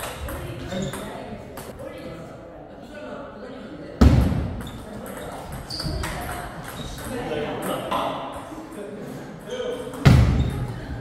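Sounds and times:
table tennis rally: 0:00.0 - 0:02.1, 0:04.0 - 0:11.0.

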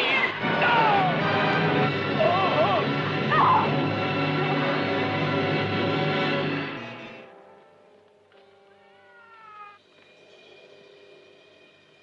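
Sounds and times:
cat yowling: 0:08.7 - 0:09.8.

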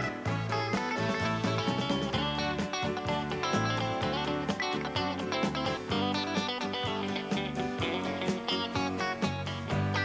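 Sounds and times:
steady drum beat: 0:00.0 - 0:09.9
electric guitar: 0:00.0 - 0:10.0.

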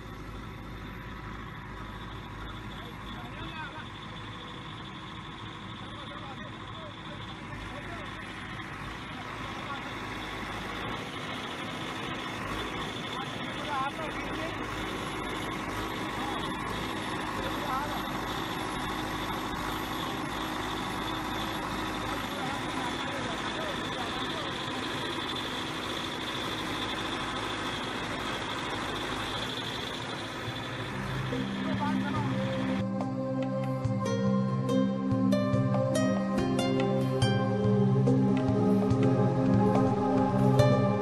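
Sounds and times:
heavy machinery engine rumbling: 0:00.0 - 0:41.0.

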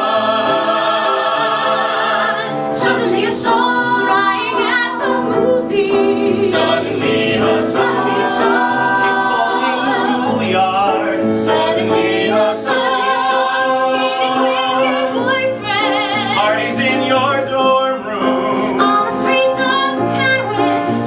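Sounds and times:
mixed vocal ensemble singing: 0:00.0 - 0:21.0.

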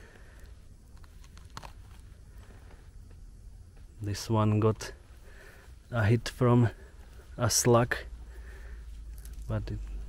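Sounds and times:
clicks and crackles of twigs: 0:00.0 - 0:03.2, 0:08.9 - 0:09.7
low steady rumble: 0:00.0 - 0:10.0.

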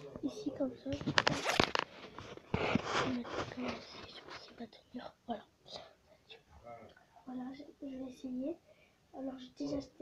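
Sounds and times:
rubbing rustle: 0:00.9 - 0:04.7.

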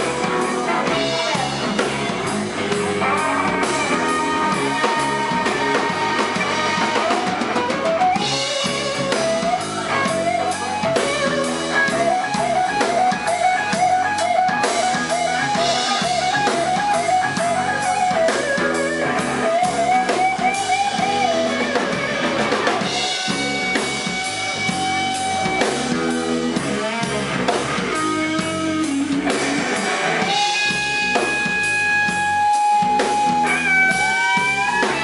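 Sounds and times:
bass guitar: 0:00.0 - 0:35.0
drum kit: 0:00.0 - 0:35.0
electric guitar lead: 0:00.0 - 0:35.0.

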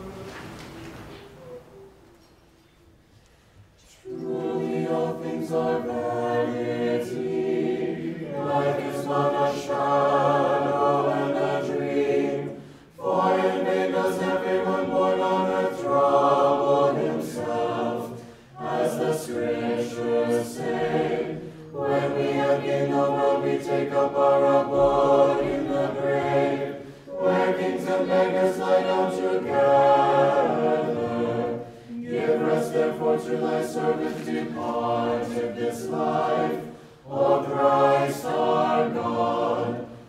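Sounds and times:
choir singing a cappella chant: 0:03.8 - 0:40.0.

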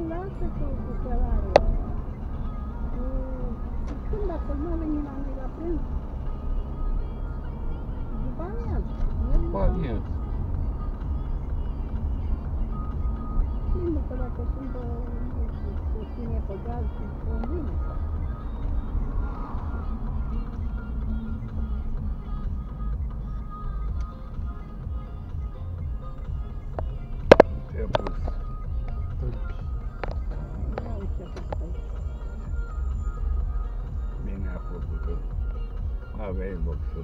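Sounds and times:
car engine and road rumble: 0:00.0 - 0:37.0
quiet music: 0:00.0 - 0:37.0.

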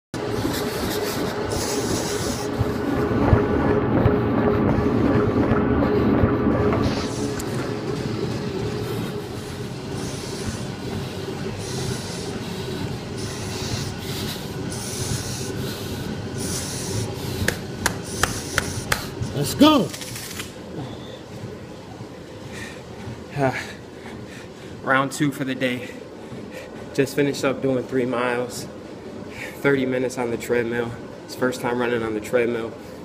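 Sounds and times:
treadmill belt and motor humming: 0:00.2 - 0:33.0
heavy breathing through a mask: 0:00.3 - 0:02.8, 0:08.8 - 0:19.1, 0:22.4 - 0:24.8, 0:25.7 - 0:27.0.

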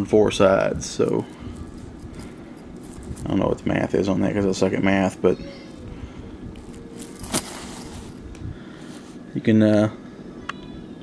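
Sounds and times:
chainmail rings clinking: 0:01.0 - 0:03.4, 0:06.6 - 0:08.2.

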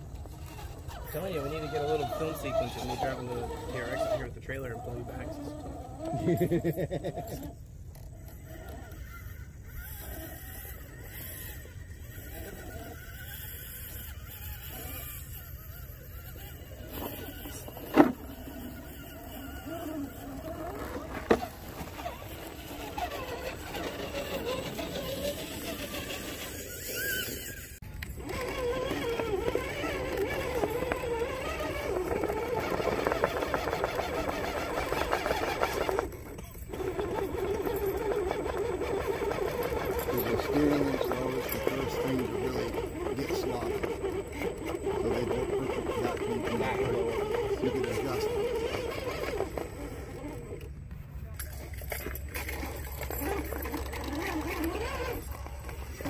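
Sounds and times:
electric motor whining: 0:00.0 - 0:56.0.

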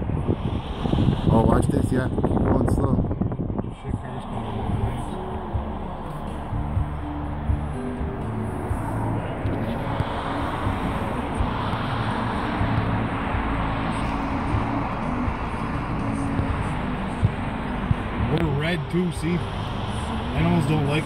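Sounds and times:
road traffic hiss: 0:00.0 - 0:02.5, 0:03.8 - 0:21.0
car engine and tyre noise: 0:00.0 - 0:21.0.

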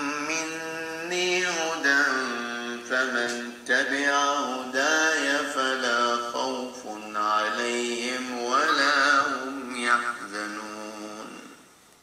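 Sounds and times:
solo voice chanting: 0:00.0 - 0:11.8.

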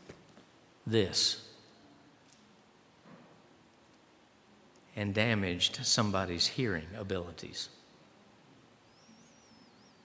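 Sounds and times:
faint high warbling whistle: 0:08.8 - 0:10.0.

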